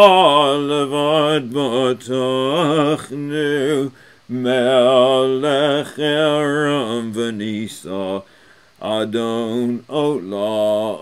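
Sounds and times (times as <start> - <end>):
man chanting prayer: 0.0 - 11.0.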